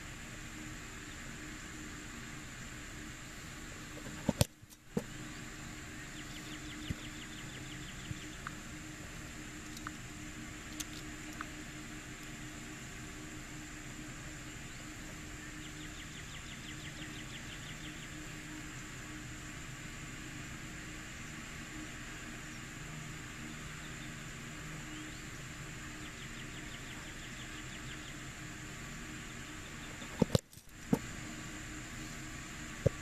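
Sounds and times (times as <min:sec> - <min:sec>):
faint low hum: 0:00.0 - 0:33.0
steady hiss: 0:00.0 - 0:33.0.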